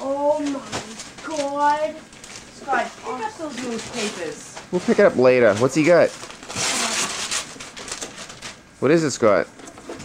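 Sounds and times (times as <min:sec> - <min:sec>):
paper rustling and crinkling: 0:00.3 - 0:08.6.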